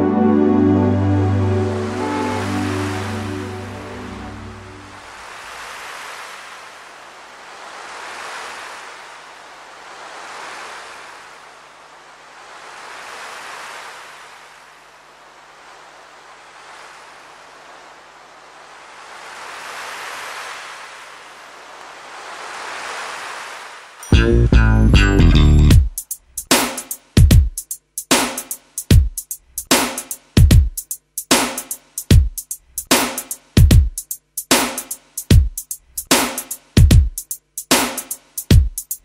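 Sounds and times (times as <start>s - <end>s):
sea waves washing: 0.0s - 24.1s.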